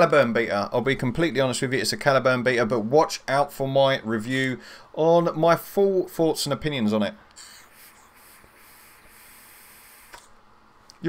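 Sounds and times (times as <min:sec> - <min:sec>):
vape draw hiss: 0:07.3 - 0:10.4.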